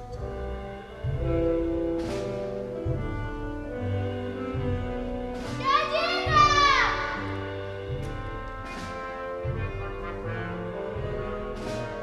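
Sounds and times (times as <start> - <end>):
orchestral chords: 0.0 - 12.0.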